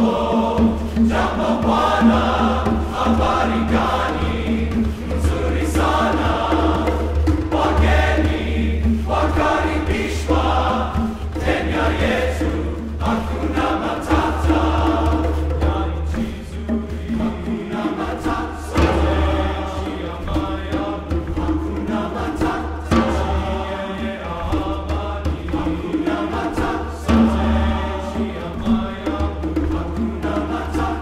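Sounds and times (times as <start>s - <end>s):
men's chorus singing: 0.0s - 31.0s.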